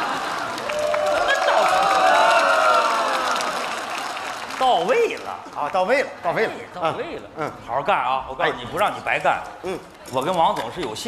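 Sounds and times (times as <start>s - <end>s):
people clapping: 0.0s - 6.4s.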